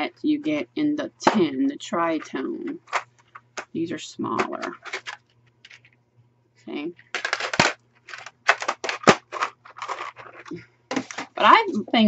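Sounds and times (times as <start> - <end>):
pencils rattling in metal tin: 2.1 - 5.9, 7.0 - 11.6.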